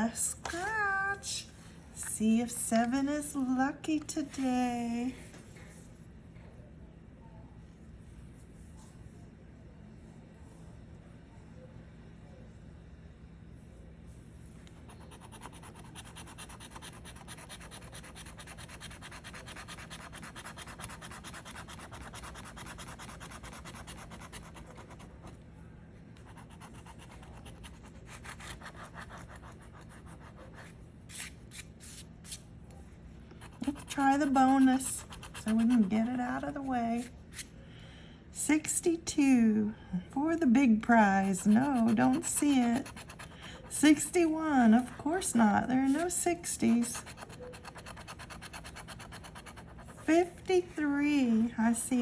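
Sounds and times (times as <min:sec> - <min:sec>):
coin scratching lottery ticket: 0:15.0 - 0:25.0.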